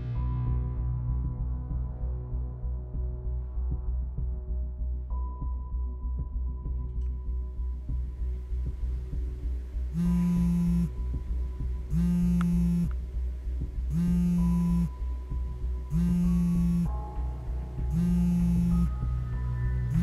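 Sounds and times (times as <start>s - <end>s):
low throbbing drone: 0.0s - 20.0s
soft synth music: 0.0s - 20.0s
mobile phone buzzing on vibrate: 10.0s - 10.9s, 11.9s - 12.9s, 13.9s - 14.9s, 15.9s - 16.9s, 17.9s - 18.9s.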